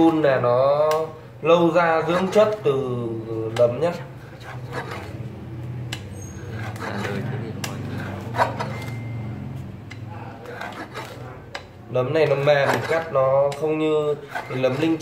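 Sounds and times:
cutter blade chopping mushroom: 12.5s - 14.8s.

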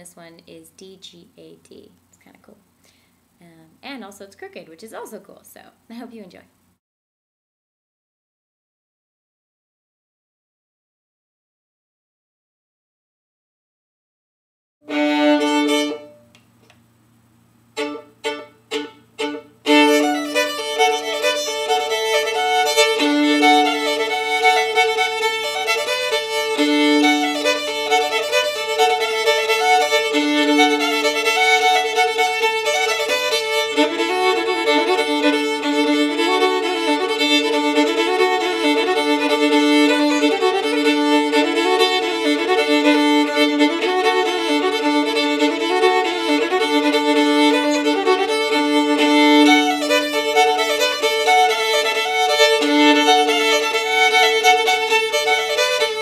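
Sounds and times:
solo fiddle with string drone: 14.8s - 16.3s, 17.7s - 56.0s.

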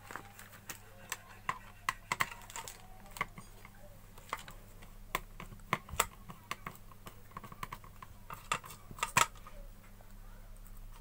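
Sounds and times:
plastic and metal parts clicking: 0.0s - 9.5s.

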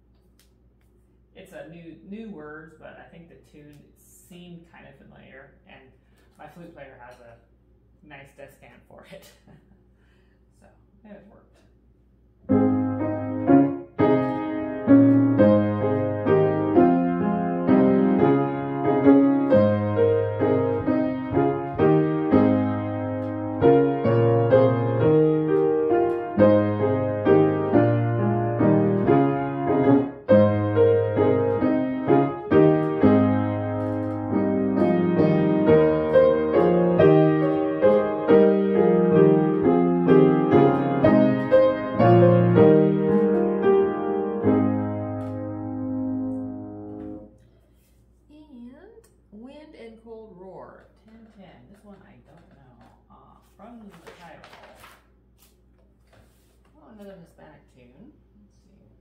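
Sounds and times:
grand piano playing hymn chords: 12.5s - 47.4s.

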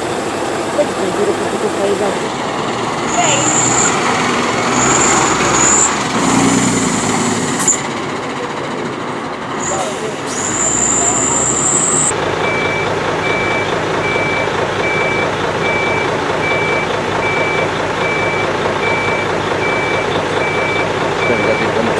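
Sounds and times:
diesel engine running: 0.0s - 21.9s
truck reversing alarm beeping: 1.1s - 8.7s, 9.6s - 21.9s
high whine: 9.6s - 12.1s.

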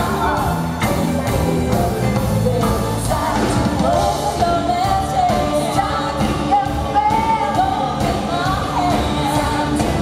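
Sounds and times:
pop band with drums: 0.0s - 10.0s
woman singing: 0.0s - 10.0s.

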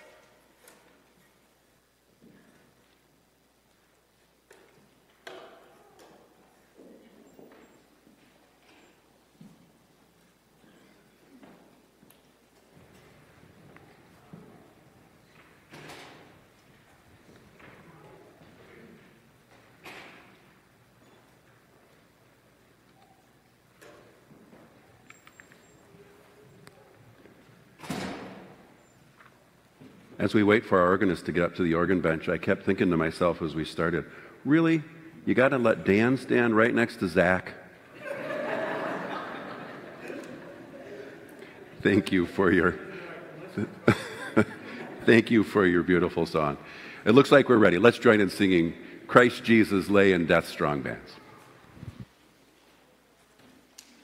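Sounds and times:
footsteps and shuffling: 2.1s - 27.8s, 28.4s - 30.4s.

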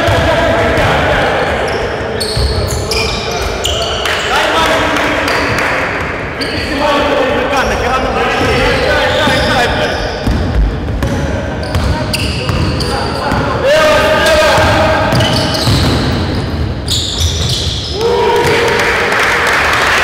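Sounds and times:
sneakers squeaking: 1.5s - 4.4s, 6.2s - 6.9s, 7.5s - 18.5s
basketball bouncing on court: 10.2s - 13.6s, 14.5s - 18.7s.

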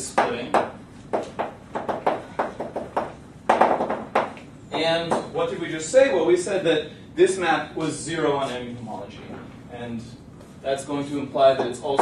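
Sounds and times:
chalk tapping on blackboard: 0.2s - 4.4s.

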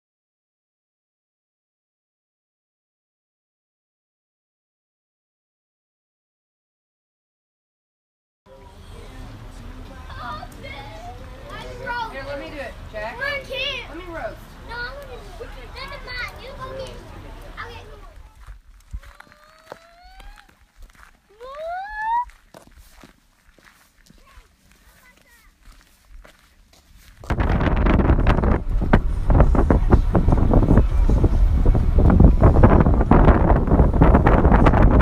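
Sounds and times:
children's voices: 8.6s - 20.6s, 21.2s - 22.3s, 24.1s - 26.5s
wind buffeting microphone: 11.6s - 19.3s, 27.0s - 35.0s
short rising calls: 21.3s - 22.3s.

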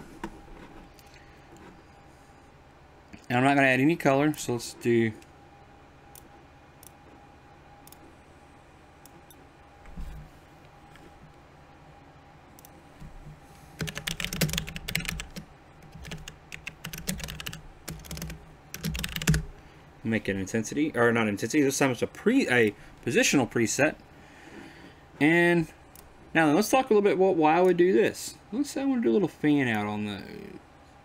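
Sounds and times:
typing on computer keyboard: 13.8s - 19.5s.

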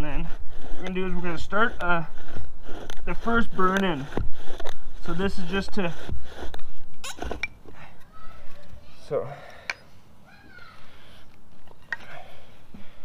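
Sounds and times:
man speaking: 9.0s - 9.4s.

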